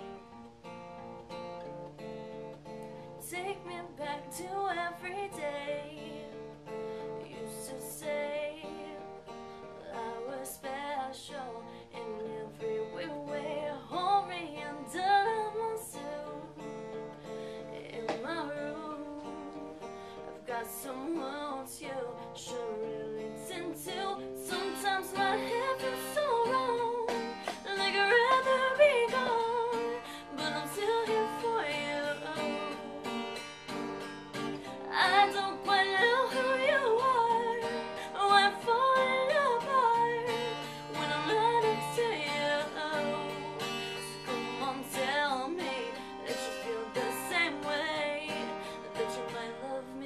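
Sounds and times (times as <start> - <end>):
acoustic guitar strumming: 0.0 - 50.0
woman singing: 3.1 - 50.0.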